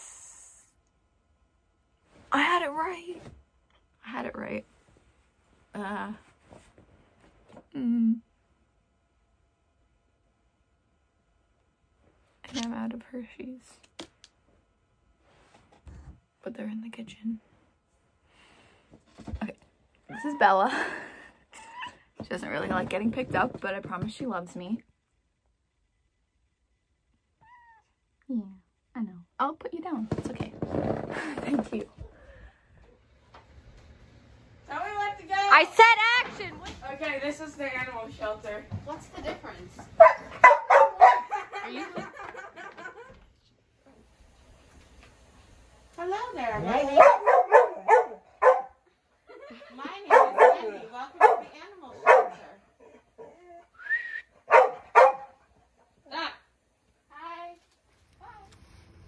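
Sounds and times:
dog barking: 40.0s - 41.4s, 46.9s - 48.8s, 50.1s - 52.5s, 54.4s - 55.4s.

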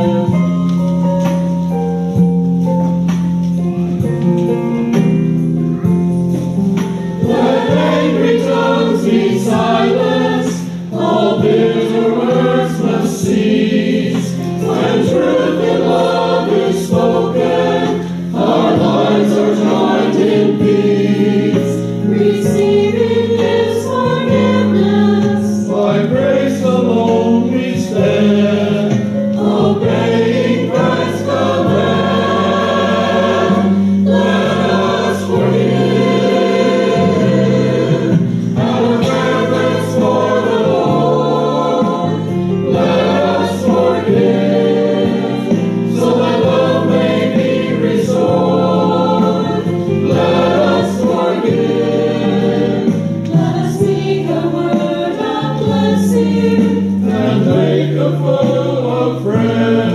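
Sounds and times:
choir singing a hymn: 0.0s - 3.2s, 6.3s - 59.9s.

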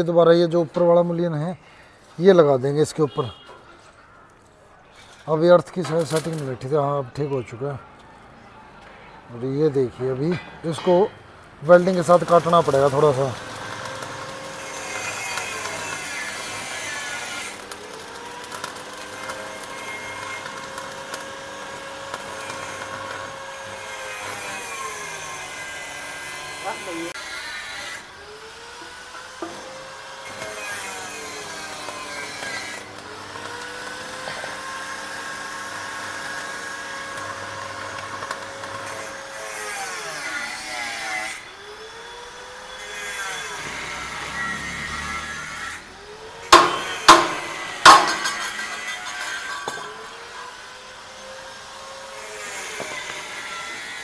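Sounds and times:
welding arc crackling and sizzling: 5.8s - 6.6s, 11.6s - 54.0s.

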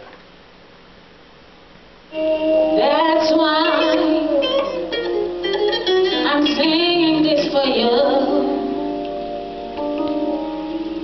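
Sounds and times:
band with keyboard: 2.1s - 11.0s
woman singing into a microphone: 2.6s - 5.1s, 5.8s - 8.9s.

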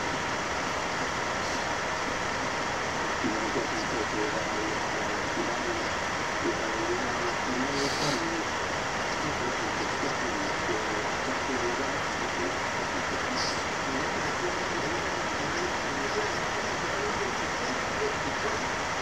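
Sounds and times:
background hiss: 0.0s - 19.0s
man talking: 3.2s - 18.9s.

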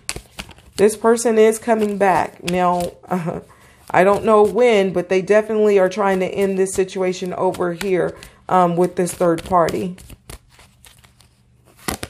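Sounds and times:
cards rustling and clicking: 0.0s - 4.7s, 6.0s - 12.0s
card stock snapping: 11.8s - 12.0s.

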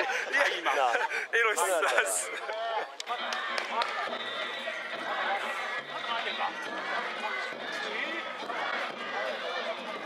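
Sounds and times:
crowd calling and talking: 0.0s - 10.0s.

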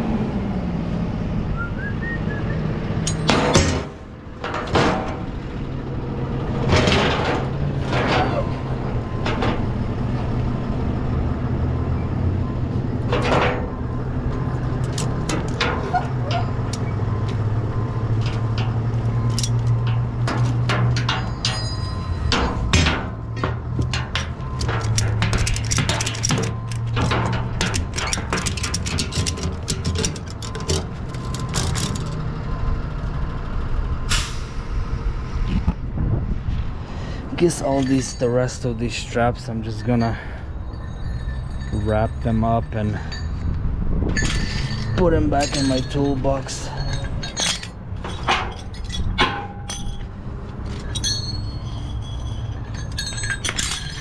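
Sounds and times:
metal hooks clanking: 3.0s - 5.4s, 13.0s - 16.9s, 18.1s - 32.2s, 37.4s - 54.0s.

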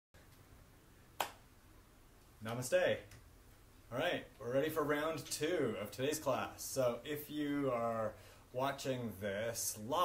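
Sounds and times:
sharp click: 1.2s - 1.4s.

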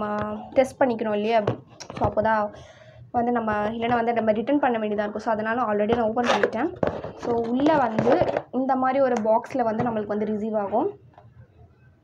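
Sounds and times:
woman speaking: 0.0s - 2.6s, 3.2s - 11.0s.

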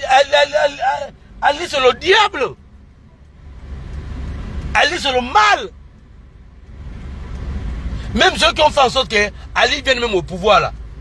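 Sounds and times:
car engine rumble: 0.0s - 11.0s
road noise inside car: 0.0s - 11.0s.

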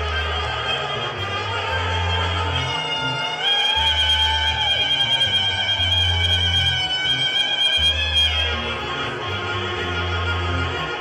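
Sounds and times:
repeating bass line: 0.0s - 11.0s
saxophones holding high note: 0.0s - 11.0s.

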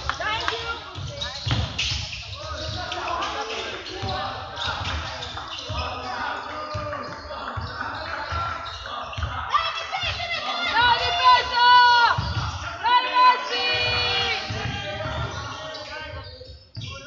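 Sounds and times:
voices of players and spectators: 0.0s - 17.0s
basketball bouncing on wooden floor: 0.9s - 2.1s.

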